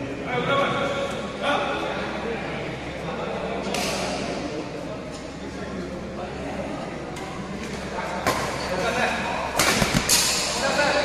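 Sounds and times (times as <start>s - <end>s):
murmur of voices: 0.0s - 11.0s
racket hitting shuttlecock: 9.5s - 10.5s.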